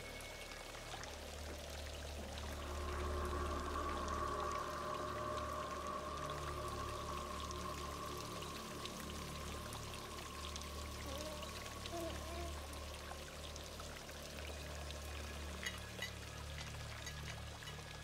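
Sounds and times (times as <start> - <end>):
low hum: 0.0 - 18.0
water pouring and dripping: 0.0 - 18.0.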